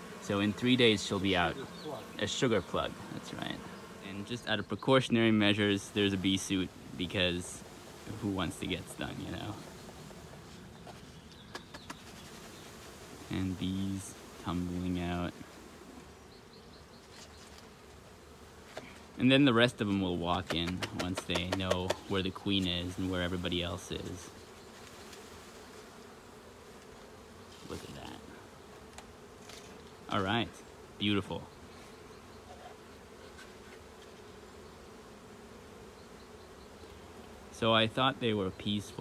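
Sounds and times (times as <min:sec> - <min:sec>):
bees buzzing: 0:00.0 - 0:39.0.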